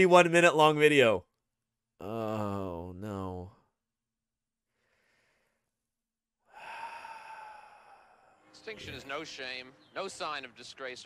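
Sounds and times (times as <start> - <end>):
breathy exhale: 4.7 - 5.7, 6.4 - 8.5.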